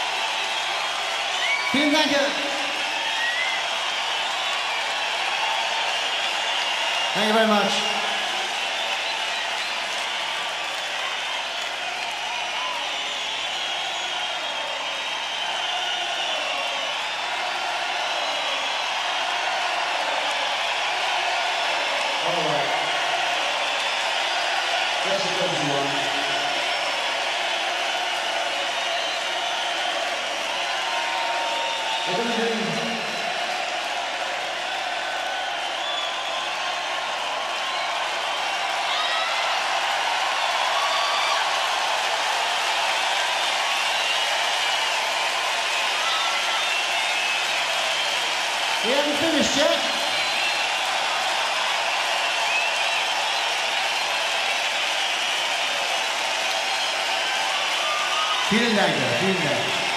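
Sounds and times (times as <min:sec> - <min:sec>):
crowd cheering and clapping: 0:00.0 - 0:59.9.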